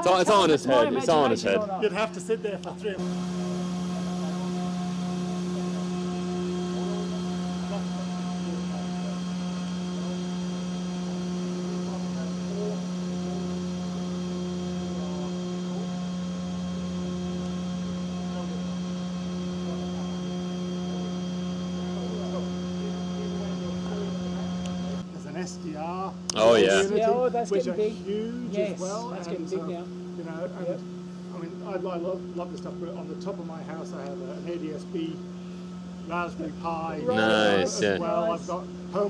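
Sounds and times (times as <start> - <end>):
antenna machinery hum: 0.0 - 25.2, 26.2 - 39.0.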